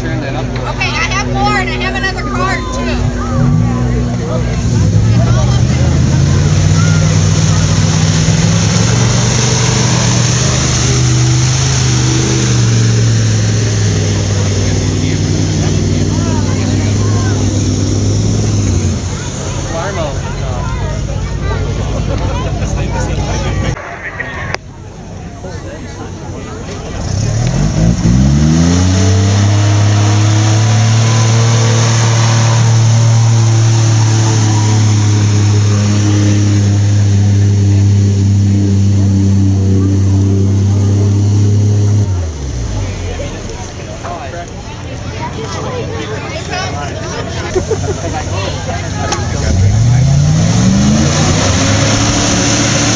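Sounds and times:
truck engine revving hard: 0:00.0 - 0:24.8, 0:25.4 - 0:52.9.

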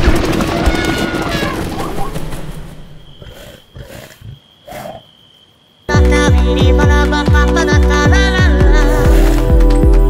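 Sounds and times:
wolf growling: 0:03.2 - 0:05.1.

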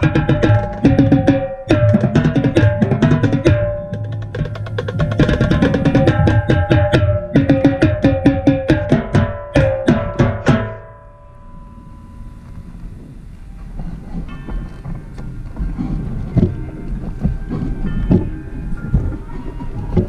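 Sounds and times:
marching tenor drums: 0:00.0 - 0:10.9.

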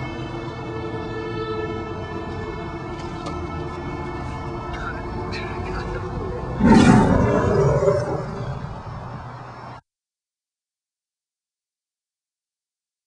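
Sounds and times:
dramatic background music: 0:00.0 - 0:08.8
tiger roar: 0:05.8 - 0:09.2.

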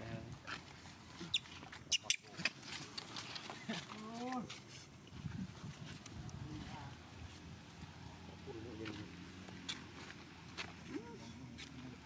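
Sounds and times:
macaque clicks: 0:01.2 - 0:03.9.

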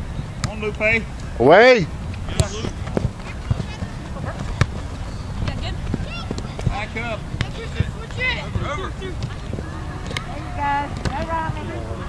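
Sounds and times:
players and spectators shouting: 0:01.5 - 0:12.0.

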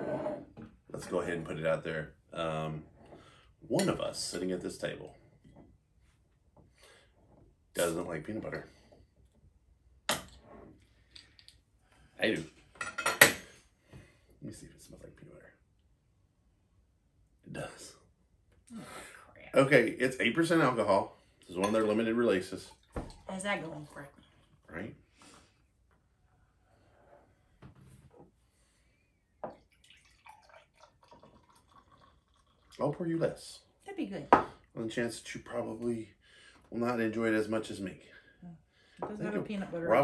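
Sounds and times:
beer pouring into glass: 0:29.4 - 0:33.0
beer fizzing: 0:29.4 - 0:33.6.

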